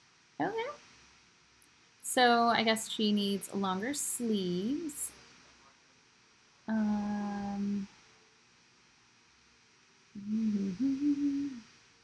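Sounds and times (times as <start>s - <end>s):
woman humming thoughtfully: 6.7s - 7.9s, 10.2s - 11.6s.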